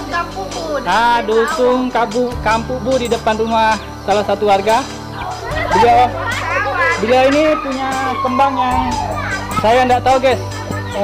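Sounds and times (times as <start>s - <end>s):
children's voices: 0.0s - 1.8s, 5.1s - 11.0s
background music: 0.0s - 11.0s.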